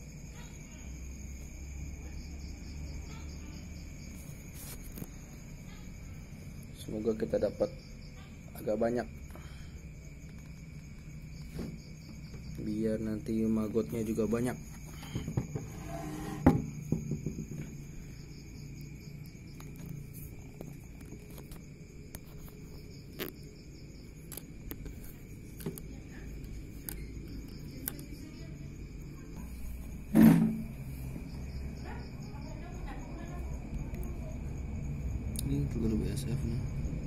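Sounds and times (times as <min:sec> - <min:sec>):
crickets chirping: 0:00.0 - 0:37.0
knock on table: 0:16.3 - 0:17.7.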